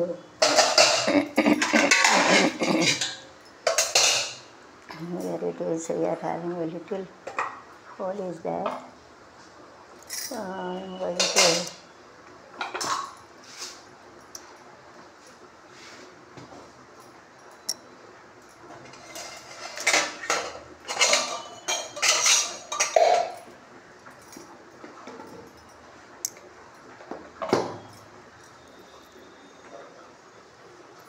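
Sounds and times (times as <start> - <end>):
metal pots and utensils clattering: 0.4 - 4.5, 10.9 - 11.8, 12.6 - 13.2, 18.7 - 23.5.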